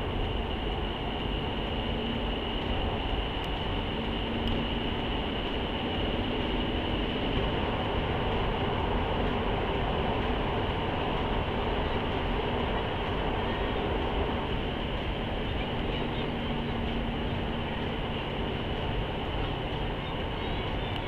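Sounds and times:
vehicle cabin rumble and hiss: 0:00.0 - 0:21.0.

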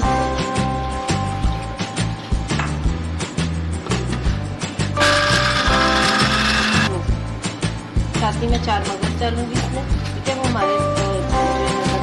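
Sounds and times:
blender motor whirring: 0:05.0 - 0:06.9.

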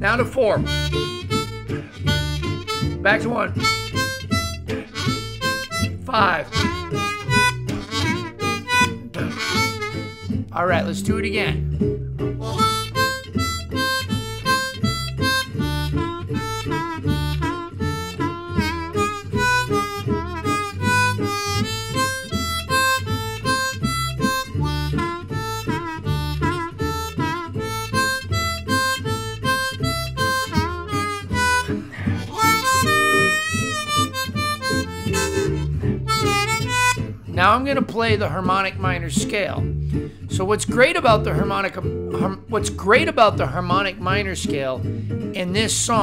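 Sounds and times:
jazz guitar backing track: 0:00.0 - 0:46.0
harmonica playing short notes: 0:00.6 - 0:10.6, 0:12.4 - 0:37.1.

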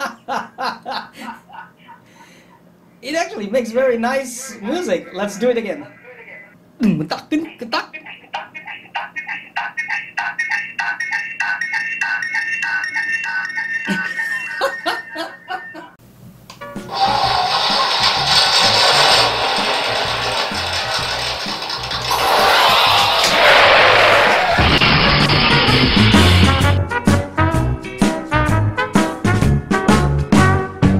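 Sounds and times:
background music: 0:25.5 - 0:30.9.

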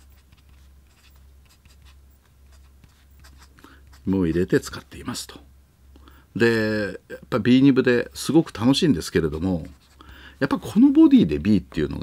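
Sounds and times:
fountain pen scratching on paper: 0:00.0 - 0:04.5, 0:09.3 - 0:10.1.

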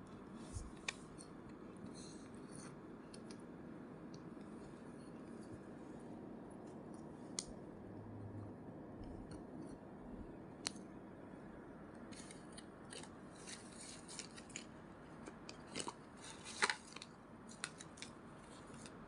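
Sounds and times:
cardboard cards rustling and scraping: 0:12.1 - 0:19.0.

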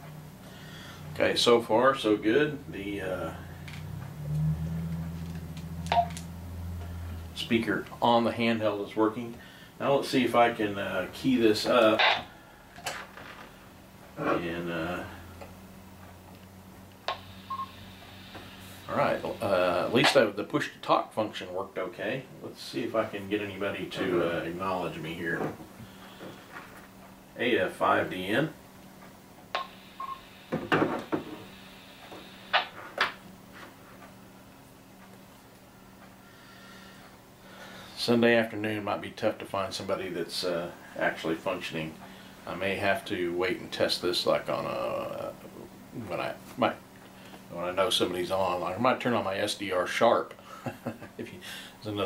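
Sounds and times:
faint low hum: 0:00.0 - 0:52.0.

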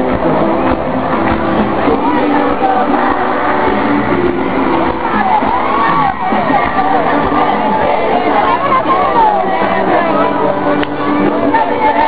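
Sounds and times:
live pop-rock band music: 0:00.0 - 0:12.0
voices bending in pitch: 0:04.8 - 0:10.6.

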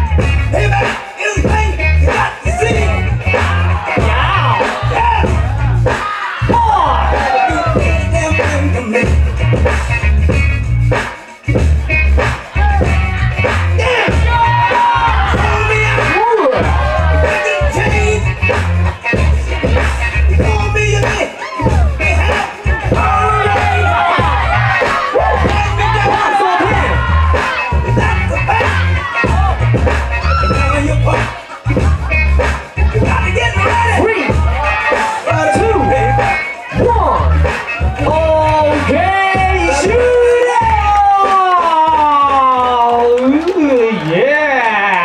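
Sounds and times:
heavy bass beat: 0:00.0 - 0:43.2
hip hop track over sound system: 0:00.0 - 0:45.0.

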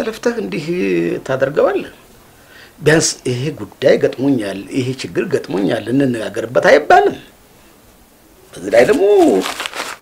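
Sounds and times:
man talking: 0:00.0 - 0:02.1, 0:02.8 - 0:07.4, 0:08.5 - 0:09.6.

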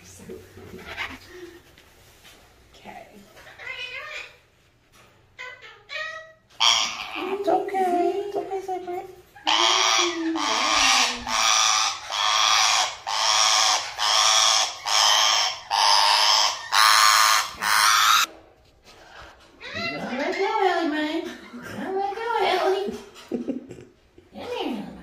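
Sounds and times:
parrot squawking: 0:03.4 - 0:04.4, 0:05.4 - 0:07.7, 0:09.3 - 0:18.3.

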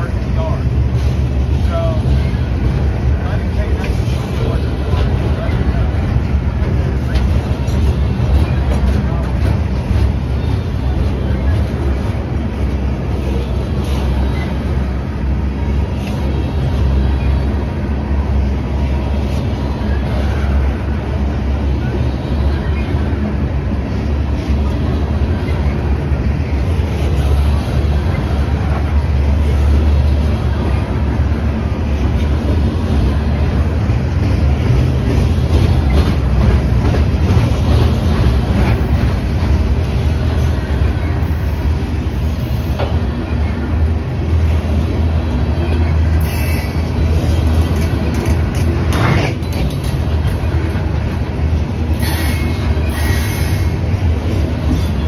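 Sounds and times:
light clicks of train: 0:00.0 - 0:55.0
train wheels rumbling on rails: 0:00.0 - 0:55.0.

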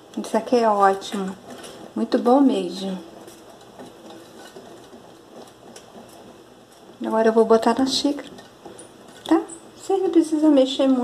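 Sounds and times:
spoon stirring in saucepan: 0:00.0 - 0:10.9.

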